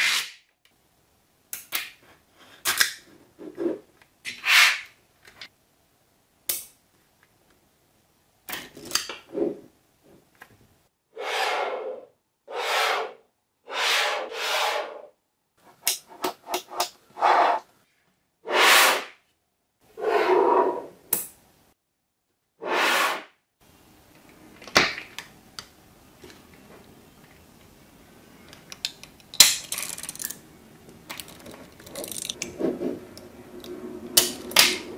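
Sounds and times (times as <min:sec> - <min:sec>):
magnetic balls clattering: 0:28.8 - 0:32.6.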